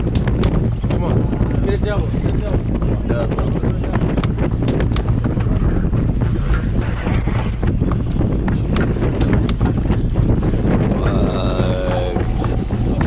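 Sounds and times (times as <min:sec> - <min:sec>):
choppy water around boat: 0:00.0 - 0:13.0
wind buffeting microphone: 0:00.0 - 0:13.0.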